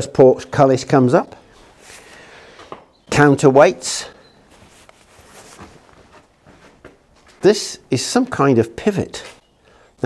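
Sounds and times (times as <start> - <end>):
footsteps on stone paving: 4.5 - 7.5.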